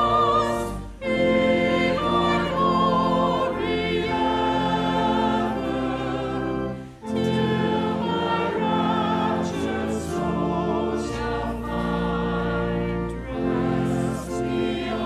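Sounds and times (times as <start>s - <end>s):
choir singing a hymn: 0.0s - 15.0s
low organ accompaniment: 0.0s - 15.0s.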